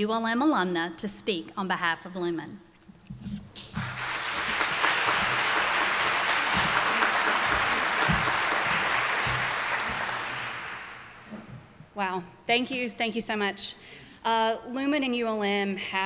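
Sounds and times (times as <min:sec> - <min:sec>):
audience applauding: 0:03.6 - 0:11.4.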